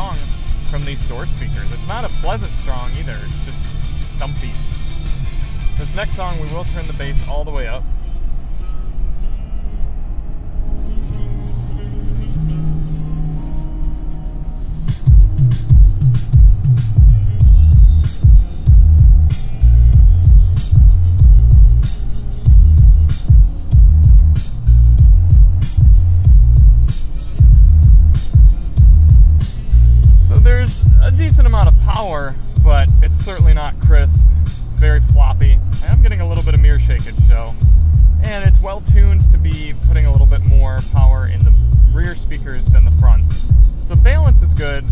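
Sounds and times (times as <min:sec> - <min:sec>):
bass-heavy music on car stereo: 0:00.0 - 0:44.9.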